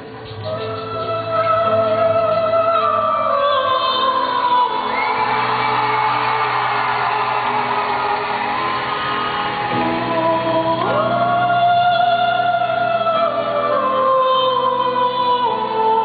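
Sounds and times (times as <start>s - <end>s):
operatic soprano singing: 0.0s - 6.4s, 9.7s - 16.0s
musical accompaniment: 0.0s - 16.0s.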